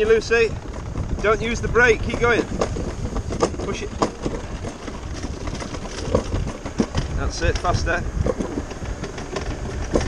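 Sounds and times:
rattles and knocks: 0:00.0 - 0:10.0
toboggan sled rumbling on steel track: 0:00.0 - 0:10.0.

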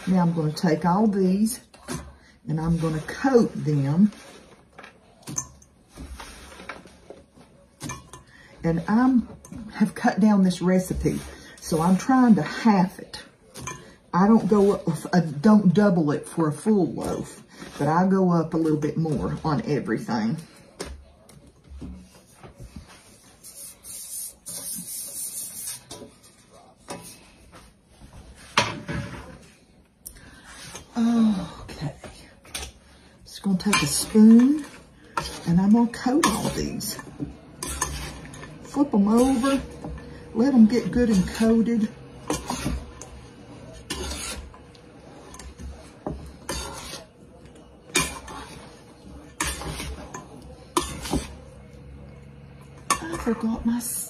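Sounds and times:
metal spoon scraping metal bowl: 0:00.0 - 0:07.2, 0:07.8 - 0:19.6, 0:23.3 - 0:26.1, 0:32.6 - 0:51.7
bread scraped off cutting board: 0:05.9 - 0:07.2, 0:37.6 - 0:40.2, 0:42.2 - 0:47.1, 0:47.9 - 0:50.2.

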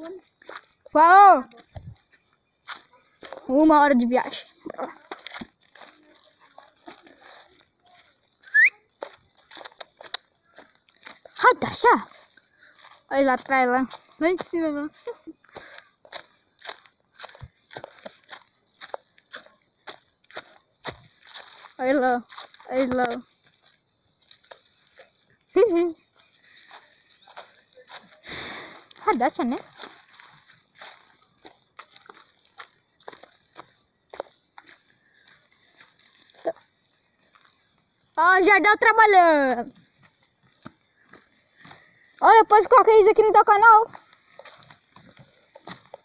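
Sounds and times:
rustling in dry vegetation: 0:00.0 - 0:46.0.

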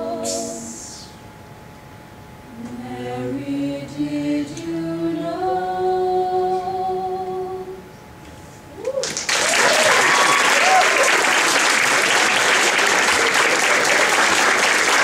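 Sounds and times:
vocal group held chord: 0:00.0 - 0:01.1, 0:02.5 - 0:07.8
audience whoops: 0:08.8 - 0:15.0
audience applause: 0:09.0 - 0:15.0.

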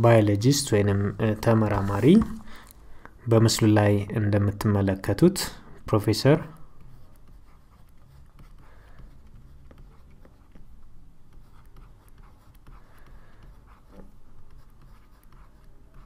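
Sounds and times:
stylus scratching on tablet: 0:00.1 - 0:02.5, 0:06.2 - 0:16.0.

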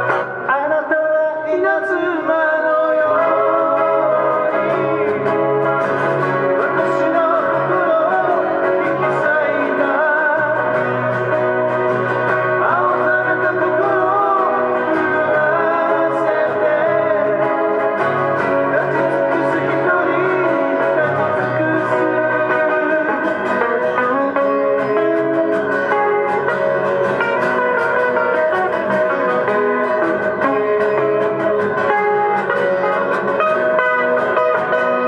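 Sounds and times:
man singing into microphone: 0:00.0 - 0:11.7, 0:12.3 - 0:26.0
acoustic guitars playing: 0:00.0 - 0:35.0.

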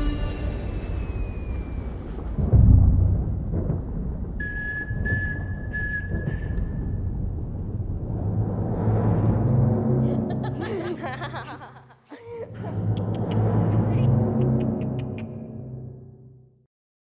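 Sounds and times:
high whistle-like tone: 0:00.0 - 0:02.2, 0:04.4 - 0:07.0
deep boom: 0:00.0 - 0:11.2
low rumbling drone: 0:00.0 - 0:11.5, 0:12.5 - 0:16.6.

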